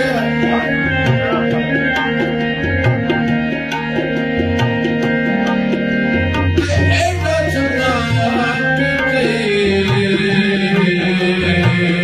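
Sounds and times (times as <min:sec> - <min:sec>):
hand drum beat: 0:00.0 - 0:08.5
harmonium playing reedy notes: 0:00.0 - 0:12.0.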